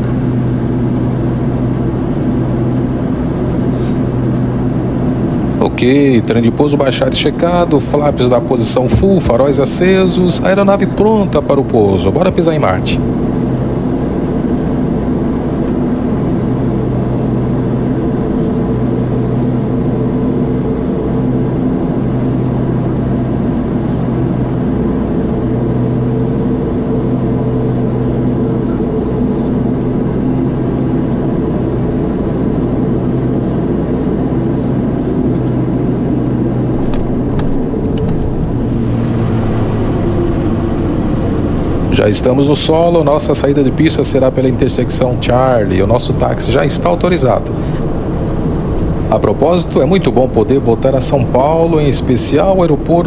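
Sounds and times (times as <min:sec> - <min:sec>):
airflow noise: 0:00.0 - 0:53.0
turboprop engines droning: 0:00.0 - 0:53.0.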